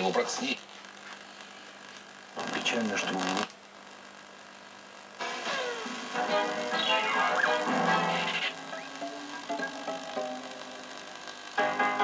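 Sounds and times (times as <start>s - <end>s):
television loudspeaker hiss: 0.0s - 12.0s
cartoon soundtrack music: 5.5s - 10.6s.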